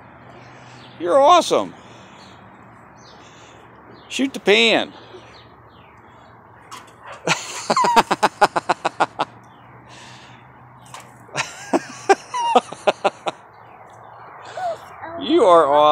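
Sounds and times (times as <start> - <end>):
rapid laughter: 7.2 - 9.4, 11.3 - 13.4.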